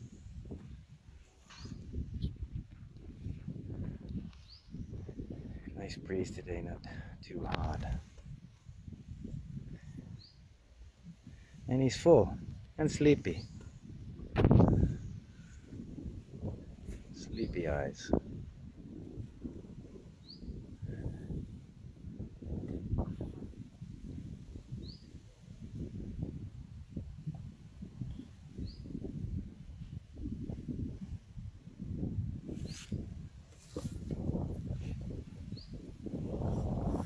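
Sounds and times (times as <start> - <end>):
wind buffeting microphone: 0.0 - 37.0
bird chirping: 10.2 - 10.5, 20.2 - 20.6, 35.5 - 35.8.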